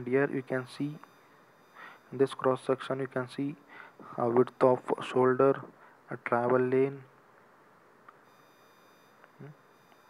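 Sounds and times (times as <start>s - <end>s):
faint hiss: 0.2s - 2.7s, 3.3s - 10.0s.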